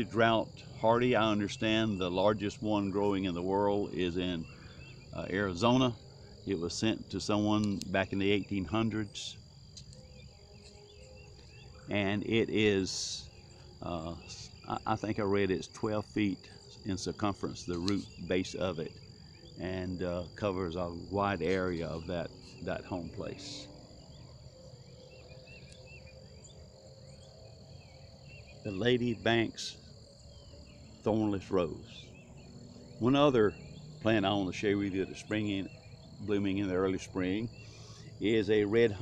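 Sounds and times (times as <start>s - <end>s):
faint chirps: 0.0s - 39.0s
insects trilling: 0.0s - 39.0s.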